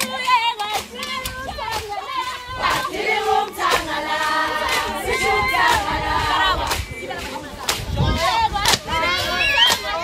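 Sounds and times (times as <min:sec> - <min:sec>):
women singing together: 0:00.0 - 0:10.0.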